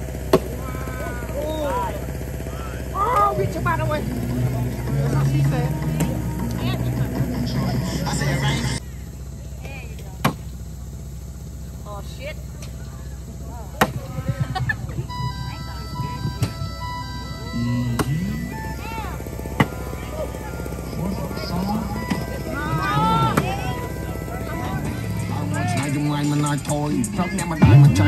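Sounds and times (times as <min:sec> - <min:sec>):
people shouting and talking: 0:00.0 - 0:28.0
background music: 0:03.6 - 0:08.8, 0:15.2 - 0:28.0.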